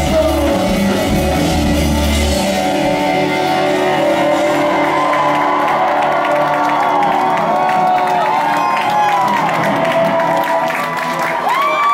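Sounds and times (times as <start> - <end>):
live rock song over pa: 0.0 - 11.9
crowd cheering and whooping: 2.6 - 11.9.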